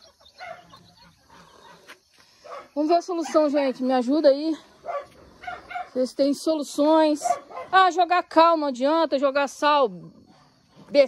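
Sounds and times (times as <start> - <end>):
hen clucking: 0.0 - 2.0.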